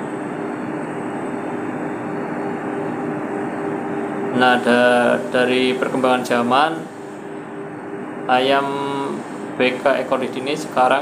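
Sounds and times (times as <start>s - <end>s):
mechanical hum: 0.0s - 11.0s.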